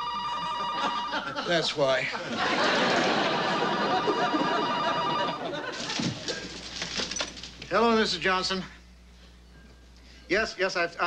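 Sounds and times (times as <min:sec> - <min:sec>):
telephone ringing: 0:00.0 - 0:01.4, 0:02.6 - 0:07.2
audience laughter: 0:00.3 - 0:06.0.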